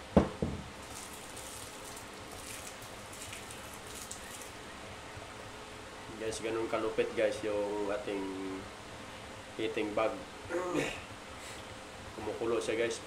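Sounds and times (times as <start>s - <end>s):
sharp knocks: 0.1s - 0.7s
heating bag crackling fizz: 0.8s - 4.6s.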